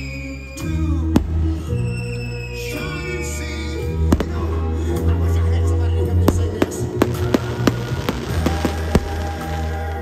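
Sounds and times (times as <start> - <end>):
music with deep bass line: 0.0 - 10.0
fireworks cracking: 4.1 - 4.6, 6.2 - 10.0.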